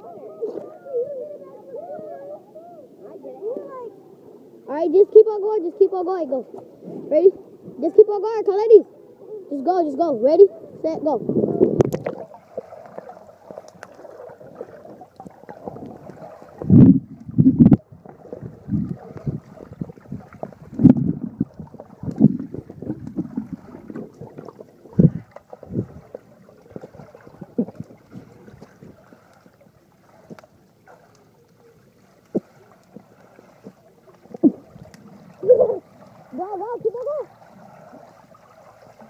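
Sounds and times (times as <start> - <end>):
water sloshing underwater: 0.0 - 39.0
dull underwater thumps: 11.2 - 29.6, 32.2 - 37.2.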